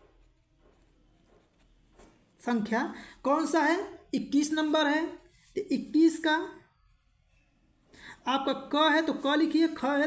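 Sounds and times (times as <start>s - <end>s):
pen scratching on paper: 0.0s - 2.7s, 3.3s - 7.1s.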